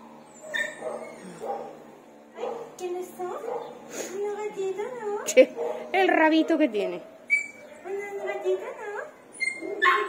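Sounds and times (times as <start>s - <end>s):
dogs yipping and barking: 0.0s - 2.8s, 3.4s - 3.9s, 5.5s - 8.6s, 9.2s - 10.0s.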